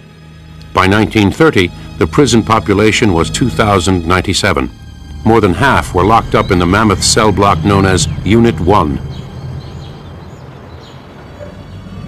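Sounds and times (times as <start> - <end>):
faint bird chirps: 6.2 - 12.0.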